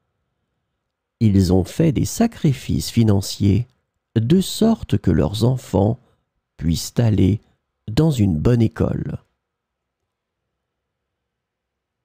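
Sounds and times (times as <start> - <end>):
person speaking: 1.2 - 9.4.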